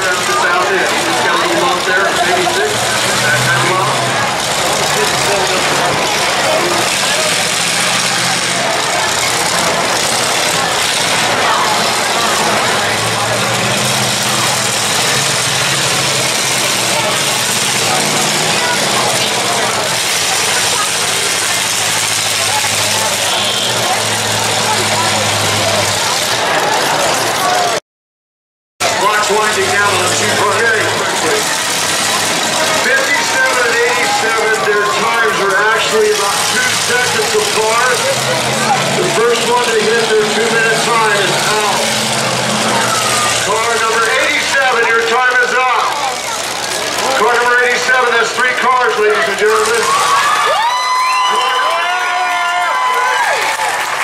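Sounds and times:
car engines revving: 0.0s - 27.8s, 28.8s - 54.0s
crowd chatter: 0.0s - 27.8s, 28.8s - 54.0s.

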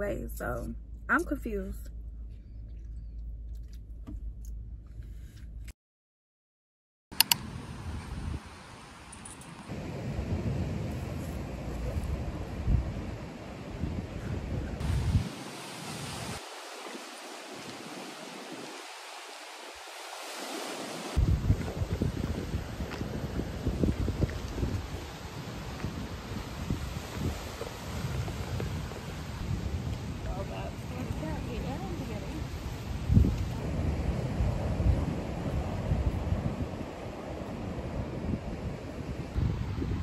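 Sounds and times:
wind buffeting microphone: 7.4s - 9.0s, 9.7s - 16.4s, 21.2s - 40.0s
lake water washing against rocks: 14.8s - 40.0s.

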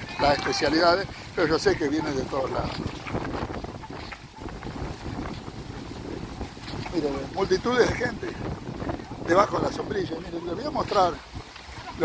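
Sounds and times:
faint voices: 0.0s - 4.0s
wind buffeting microphone: 0.0s - 12.0s.

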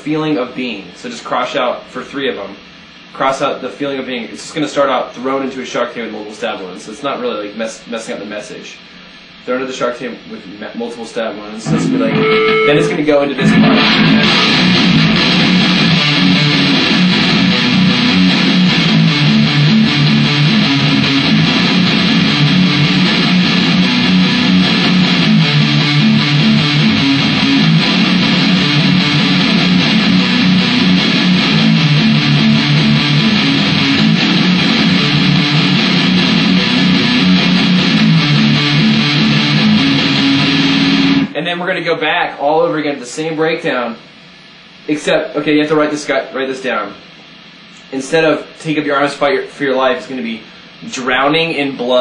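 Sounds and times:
distorted electric guitar riff: 11.6s - 41.4s.

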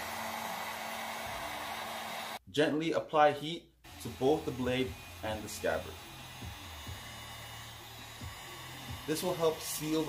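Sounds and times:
heat gun blowing hum: 0.0s - 2.4s, 3.9s - 10.0s.

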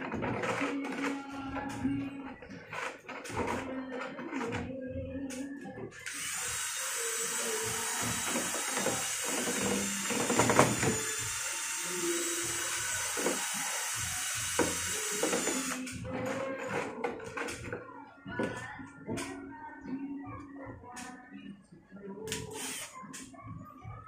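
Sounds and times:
cordless drill mixing cement: 0.0s - 17.7s, 22.3s - 23.0s.

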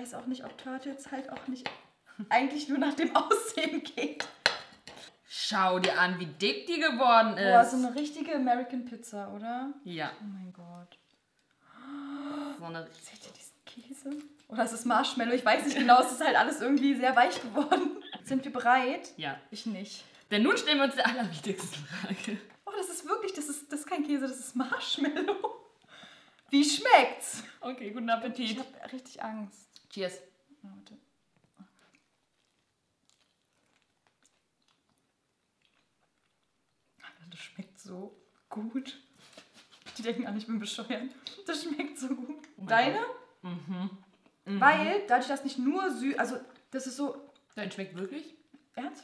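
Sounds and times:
soft chewing mouth clicks: 31.4s - 37.5s, 46.5s - 47.6s.

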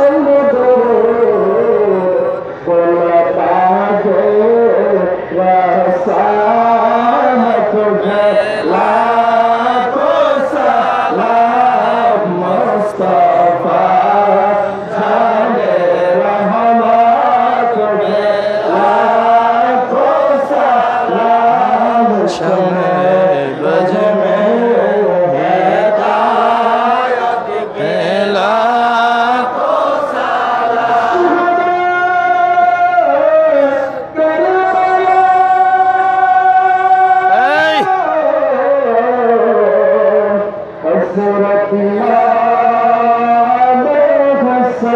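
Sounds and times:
man chanting into a microphone: 0.0s - 44.9s.

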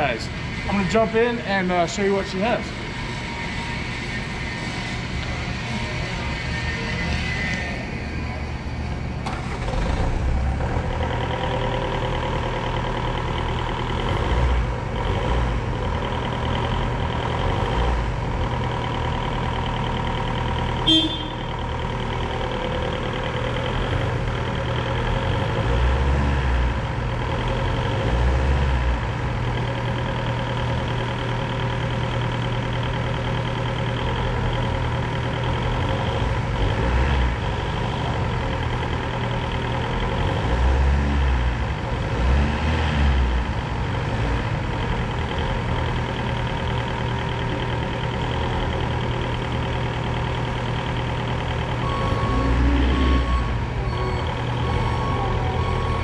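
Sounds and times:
forklift engine drone and whine: 0.0s - 56.0s
short loud horn beep: 20.8s - 21.5s.

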